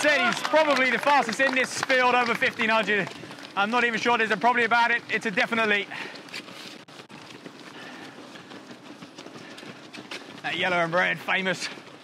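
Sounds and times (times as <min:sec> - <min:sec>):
runners' footsteps on path: 0:00.0 - 0:12.0.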